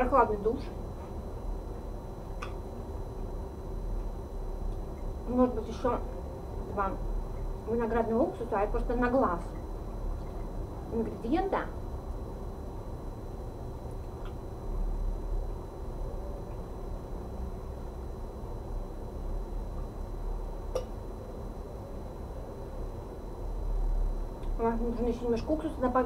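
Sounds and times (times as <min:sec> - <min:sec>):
low room rumble: 0:00.0 - 0:26.0.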